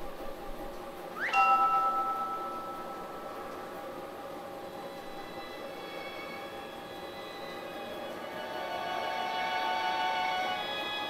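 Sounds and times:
soft held tones: 1.2 - 4.4
bell-like chime chord: 1.3 - 4.0.

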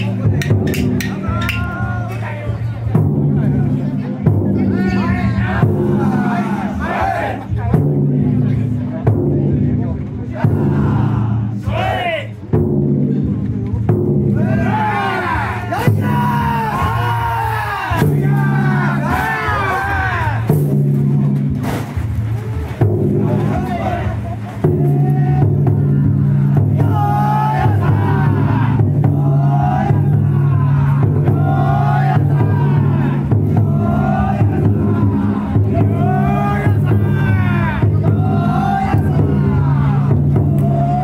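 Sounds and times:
people shouting calls: 0.0 - 2.6, 10.3 - 12.4, 14.3 - 20.6, 23.1 - 41.0
crowd noise: 0.0 - 41.0
taiko drum beating: 0.0 - 41.0
people chanting in unison: 4.5 - 8.6, 10.2 - 12.3, 14.3 - 20.6, 23.1 - 41.0.

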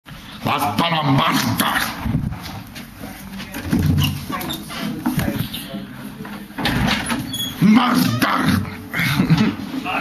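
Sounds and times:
muffled men's voices: 0.4 - 2.1.

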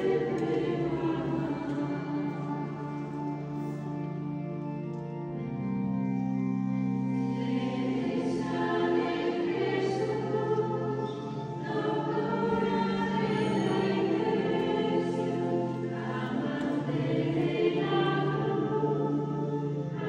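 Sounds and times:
choir singing sacred music: 0.0 - 20.0.

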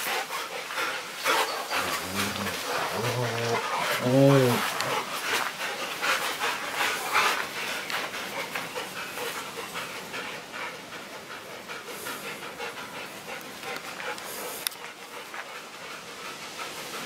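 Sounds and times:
dogs panting hard: 0.0 - 17.0.

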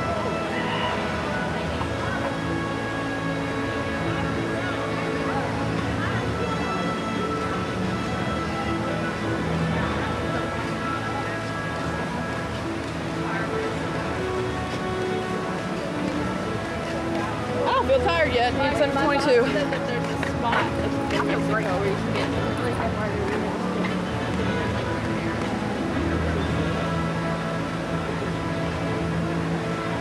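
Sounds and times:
background music with held notes: 0.0 - 30.0
distant crowd chatter: 0.0 - 30.0
fountain water splashing: 0.0 - 30.0
passers-by talking: 0.0 - 30.0.

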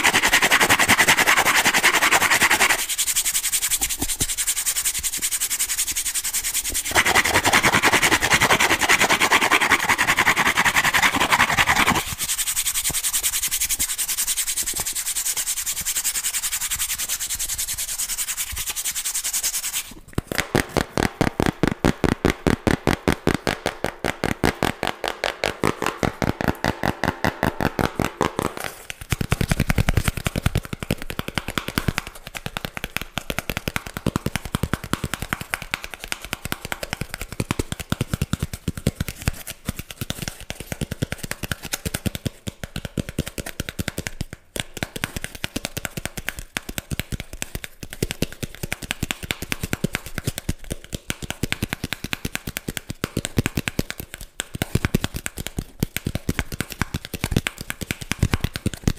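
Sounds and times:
fingernails scratching cardboard: 0.0 - 4.5, 6.8 - 12.6.

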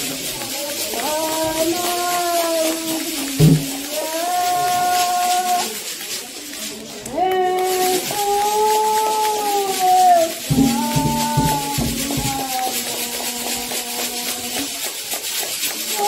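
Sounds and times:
rattle shaken in a beat: 0.0 - 16.0
woman singing chant: 0.5 - 5.9, 7.0 - 14.8
lower voice singing along: 7.1 - 14.7.

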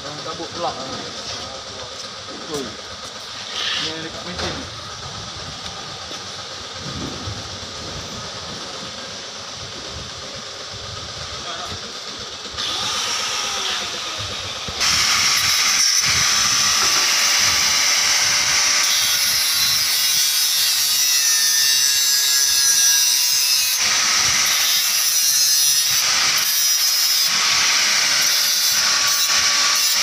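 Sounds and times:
workshop noise: 0.0 - 30.0
angle grinder cutting steel pipe: 11.4 - 30.0.

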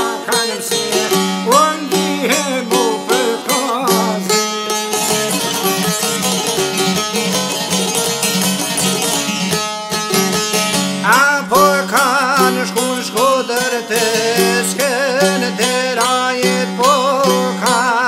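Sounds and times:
plucked lute melody: 0.0 - 18.0.

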